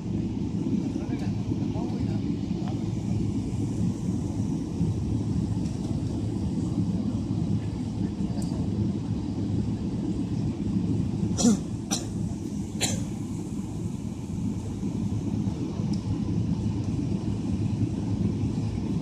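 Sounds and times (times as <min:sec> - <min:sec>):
aircraft cabin engine rumble: 0:00.0 - 0:19.0.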